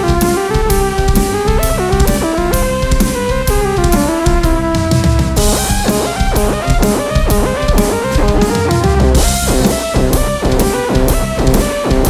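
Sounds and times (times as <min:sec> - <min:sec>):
guitar runs: 0:00.0 - 0:12.0
rock drum kit: 0:00.0 - 0:12.0.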